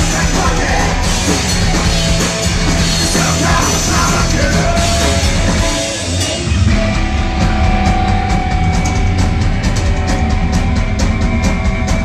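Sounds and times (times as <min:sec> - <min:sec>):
person singing: 0:00.0 - 0:01.4, 0:03.0 - 0:05.6
punk rock band playing live: 0:00.0 - 0:12.0.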